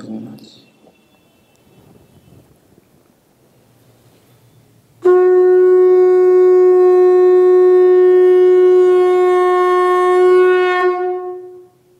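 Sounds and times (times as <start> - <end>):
conch shell blown in long note: 5.0 - 11.9.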